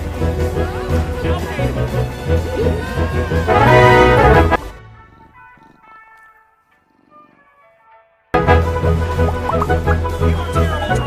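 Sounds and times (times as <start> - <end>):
cat purring: 4.6 - 7.8.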